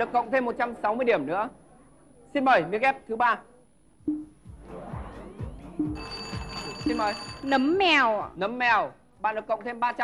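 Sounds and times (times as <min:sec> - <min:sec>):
background music with falling sweeps: 0:04.0 - 0:06.8
game-show answer bell: 0:06.0 - 0:08.0.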